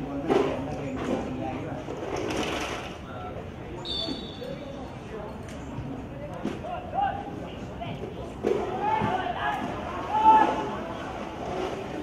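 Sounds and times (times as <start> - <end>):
high whistle tone: 3.8 - 4.6
distant shouts: 8.6 - 10.9.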